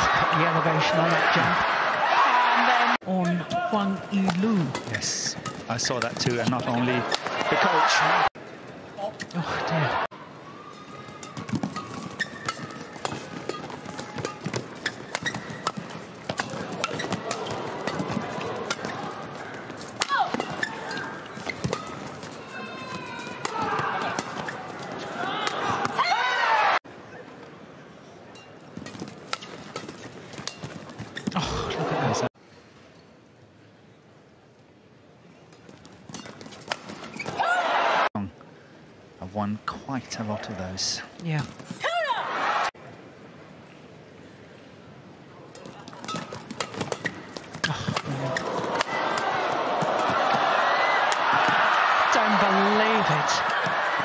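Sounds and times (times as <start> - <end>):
arena crowd noise: 0.0 - 32.4, 36.7 - 54.0
racket hitting shuttlecock: 11.2 - 19.1, 19.7 - 24.6, 28.8 - 31.4, 45.9 - 50.4
shoe squeaks on court: 11.3 - 15.8, 29.4 - 31.4, 36.1 - 37.4, 46.0 - 47.3.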